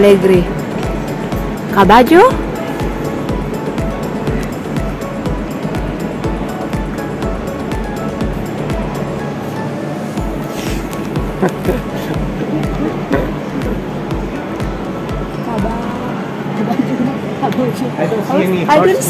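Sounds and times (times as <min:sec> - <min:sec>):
music with steady beat: 0:00.0 - 0:16.3
kick drum thumps: 0:10.2 - 0:16.0.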